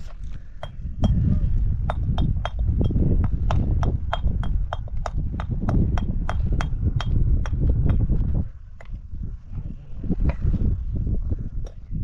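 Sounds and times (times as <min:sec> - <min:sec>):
low rumble: 0:00.0 - 0:12.0
hammer chipping stone: 0:00.6 - 0:01.2, 0:01.8 - 0:08.2.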